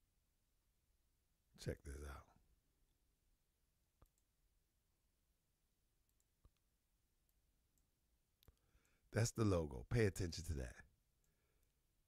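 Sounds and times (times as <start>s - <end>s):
computer mouse clicks: 4.0s - 4.3s.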